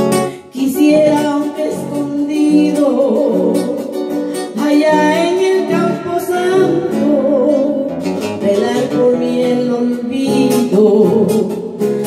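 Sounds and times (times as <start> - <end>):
plucked acoustic guitar: 0.0 - 12.0
woman singing: 0.0 - 12.0.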